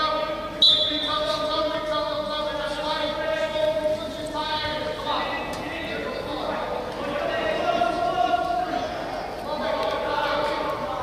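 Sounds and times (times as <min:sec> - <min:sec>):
voices calling in a hall: 0:00.0 - 0:11.0.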